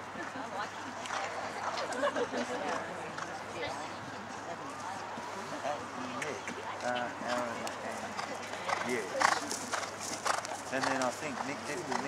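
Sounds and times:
voices talking: 0.2s - 12.0s
horse hooves on turf: 7.3s - 12.0s.

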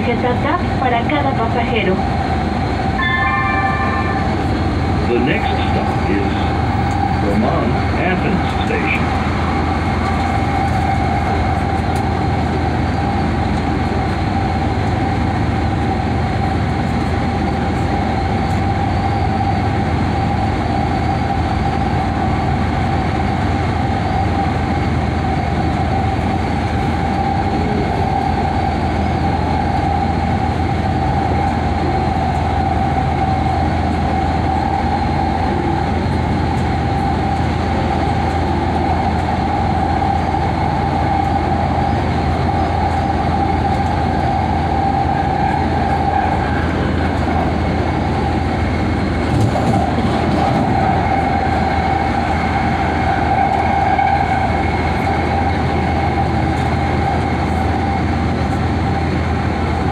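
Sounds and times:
train wheels rumbling on rail: 0.0s - 59.9s
high hum: 0.2s - 13.2s.

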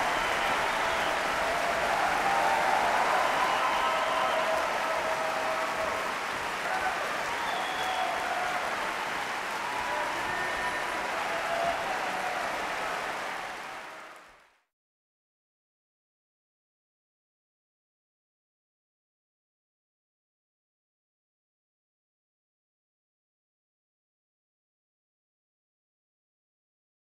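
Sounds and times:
large audience applauding: 0.0s - 14.6s.

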